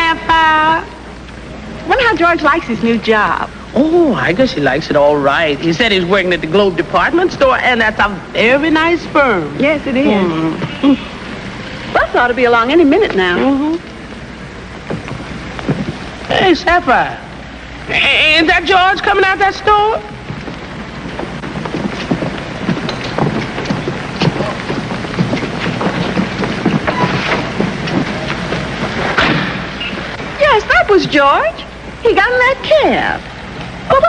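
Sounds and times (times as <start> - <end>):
background hiss: 0.0 - 34.0
low hum: 0.0 - 34.0
traffic rushing: 5.0 - 34.0.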